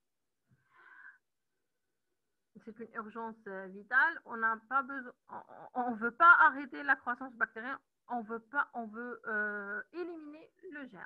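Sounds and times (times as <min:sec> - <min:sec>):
wheezy breath: 0:00.6 - 0:01.2.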